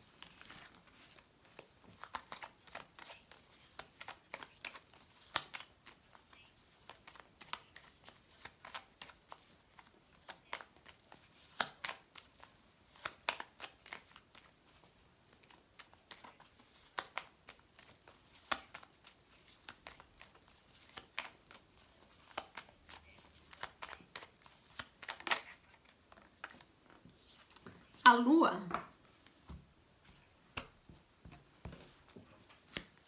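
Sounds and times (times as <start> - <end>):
cards being shuffled: 0.0 - 28.0, 28.7 - 33.0.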